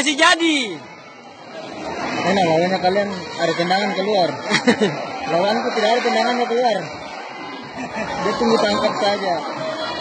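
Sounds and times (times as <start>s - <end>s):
people calling out and chattering: 0.0s - 10.0s.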